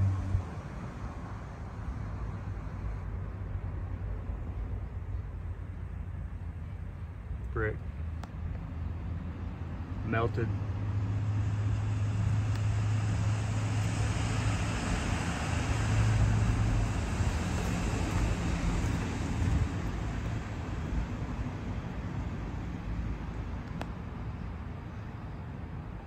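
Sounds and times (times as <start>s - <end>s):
road traffic rumble: 0.0s - 26.0s.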